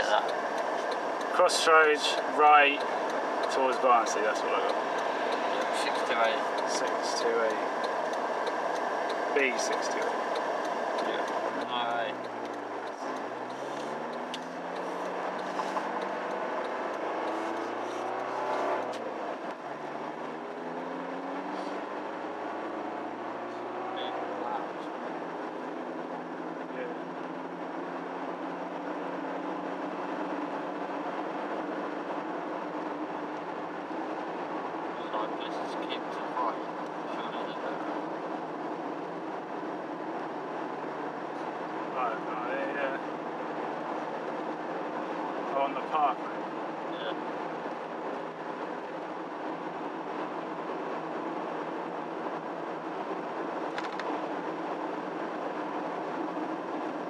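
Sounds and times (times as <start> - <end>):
diesel car engine accelerating: 0.0 - 57.0
tyre and road noise: 0.0 - 57.0.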